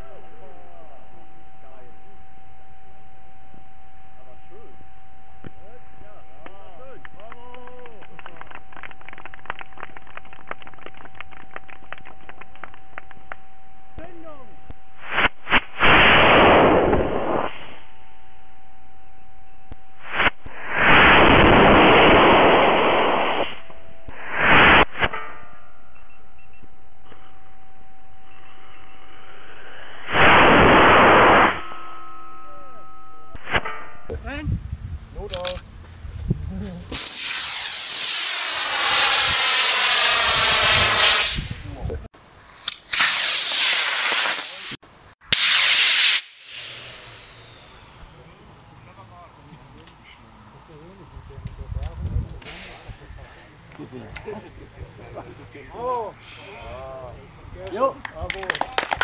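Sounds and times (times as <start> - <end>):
steady hum: 0.0 - 45.2
rocket motor rushing roar: 14.9 - 17.9, 19.7 - 25.0, 28.3 - 31.6, 36.8 - 41.8, 42.4 - 48.0.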